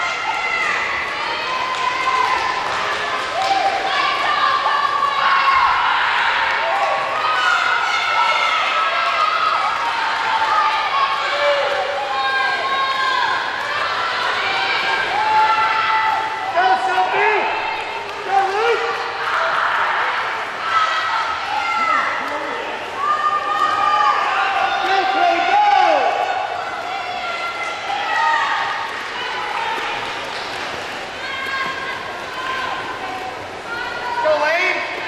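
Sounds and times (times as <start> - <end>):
children shouting and cheering: 0.0 - 34.7.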